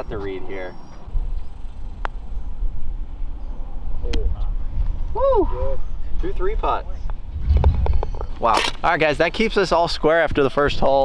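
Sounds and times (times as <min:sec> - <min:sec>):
low wind rumble on microphone: 0:00.0 - 0:11.0.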